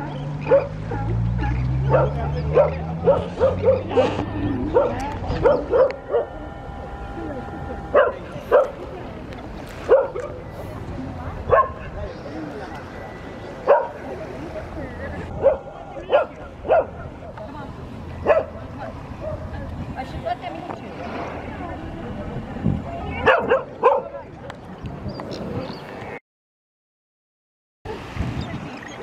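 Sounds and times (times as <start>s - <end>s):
sea lions barking: 0.4s - 9.0s, 12.9s - 17.2s.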